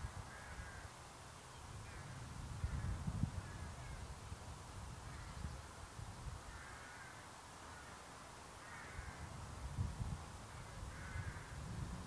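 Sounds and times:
crow cawing: 0.3s - 0.9s, 6.5s - 8.0s, 8.6s - 9.3s, 10.9s - 11.6s.

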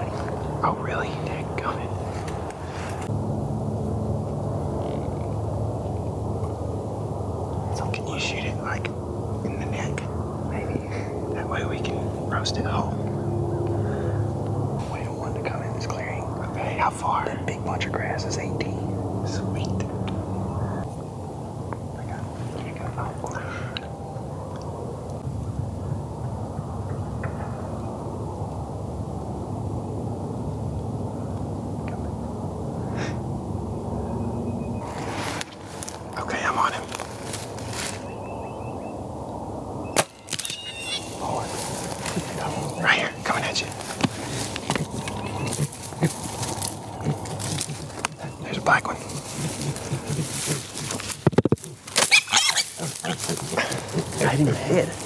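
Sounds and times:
hogs grunting: 7.6s - 20.9s, 40.7s - 55.0s.

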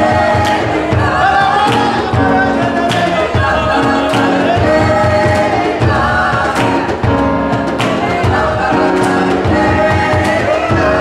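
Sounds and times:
group singing in harmony: 0.0s - 11.0s.

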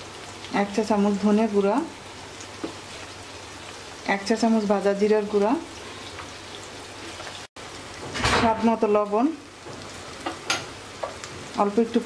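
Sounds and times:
prawns and onions sizzling in oil: 0.0s - 12.0s.

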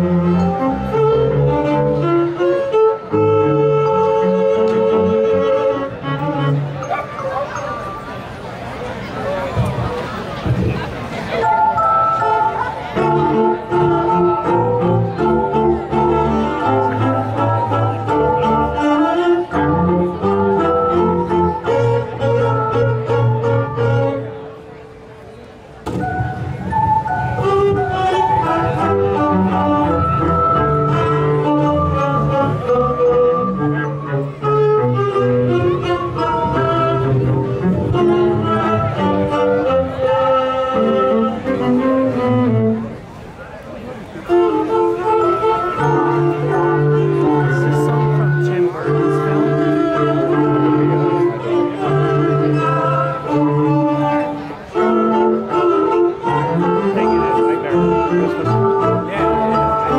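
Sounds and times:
string ensemble playing: 0.0s - 25.2s, 25.8s - 59.9s
faint crowd voices: 0.0s - 59.9s.

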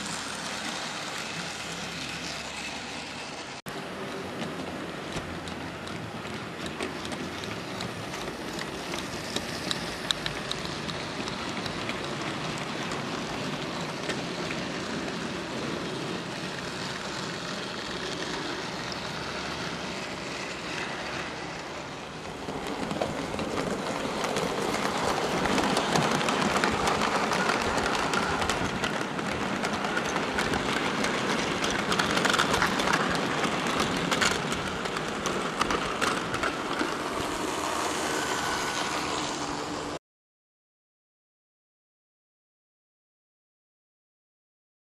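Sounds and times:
model trains whirring: 0.0s - 40.0s
wheels clicking on rail: 0.0s - 40.0s.

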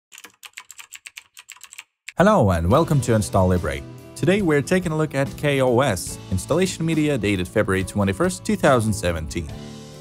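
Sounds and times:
typing on computer keyboard: 0.1s - 2.2s.

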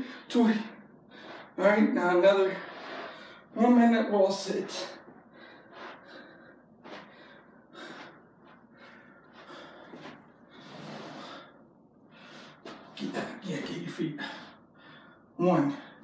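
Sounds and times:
man breathing hard: 0.0s - 1.6s, 5.2s - 12.9s, 14.2s - 16.0s.

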